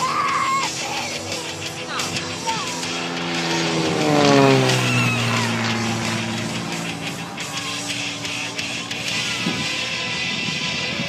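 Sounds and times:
propeller plane flying by: 0.0 - 11.0.

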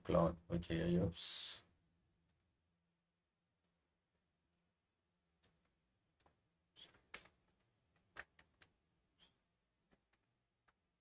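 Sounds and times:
computer mouse clicks: 2.2 - 2.5, 5.4 - 7.4.

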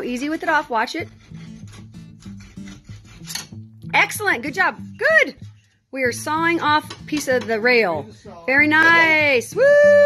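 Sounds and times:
hand saw cutting wood: 0.0 - 3.6
background music: 0.0 - 10.0.

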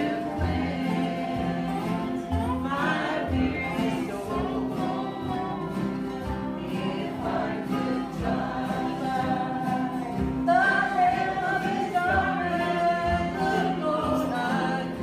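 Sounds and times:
acoustic guitars and upright basses: 0.0 - 15.0
group singing together: 0.0 - 15.0.

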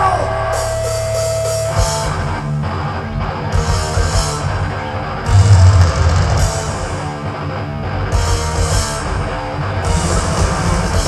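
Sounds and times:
thrash metal band playing live: 0.0 - 11.0.

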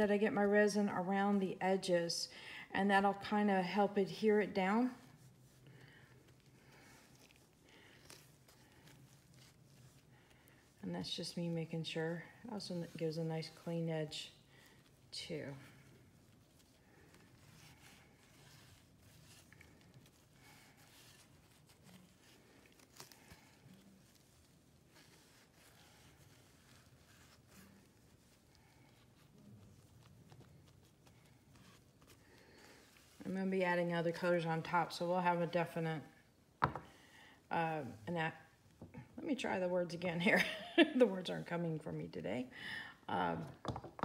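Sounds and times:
soft handling sounds: 3.0 - 44.0.

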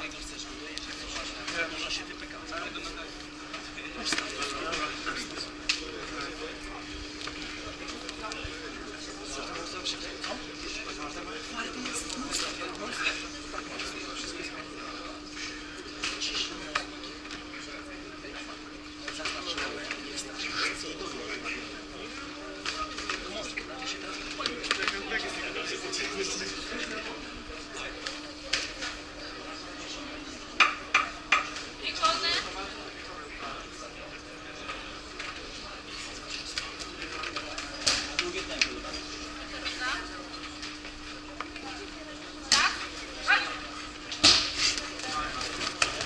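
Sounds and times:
faint voices: 0.0 - 46.0
indistinct background chatter: 0.0 - 46.0
steady hum: 0.0 - 46.0.

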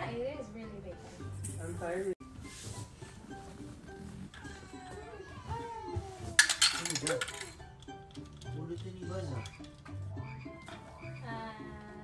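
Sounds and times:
background music: 0.0 - 12.0
plastic toy blocks clattering: 6.4 - 7.6.

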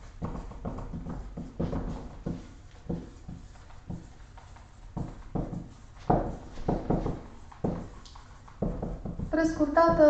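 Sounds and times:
marker writing on whiteboard: 0.0 - 10.0.

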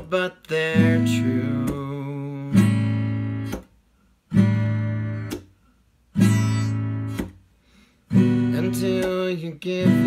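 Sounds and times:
acoustic guitar chords strummed: 0.0 - 7.5, 8.1 - 10.0.

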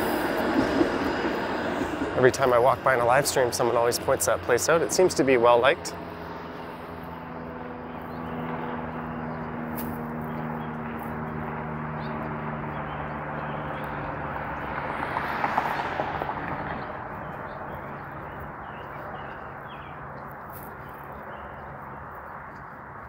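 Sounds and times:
car passing by: 0.0 - 19.9
low engine hum: 0.0 - 23.0.

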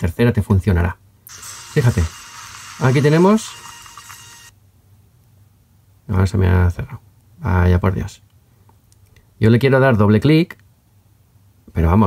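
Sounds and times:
faint hiss: 1.2 - 4.5.

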